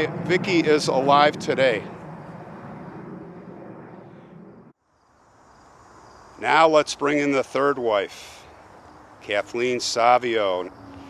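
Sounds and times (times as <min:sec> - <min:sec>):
outdoor low hum: 0:00.0 - 0:11.0.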